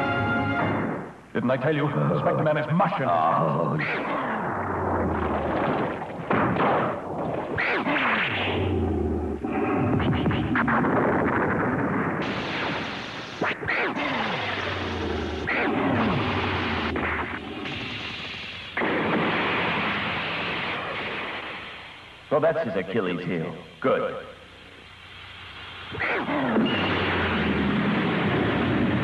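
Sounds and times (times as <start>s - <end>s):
soundtrack music: 0.0s - 1.0s
blasts: 3.8s - 22.3s, 25.4s - 29.0s.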